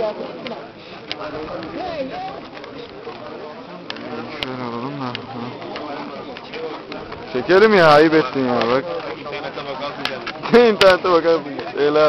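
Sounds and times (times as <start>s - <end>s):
men's voices murmuring: 0.0s - 12.0s.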